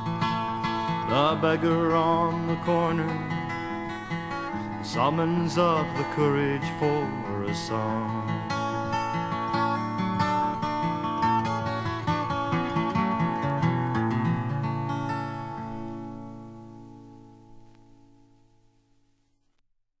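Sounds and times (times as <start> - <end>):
strummed acoustic guitar: 0.0 - 18.4.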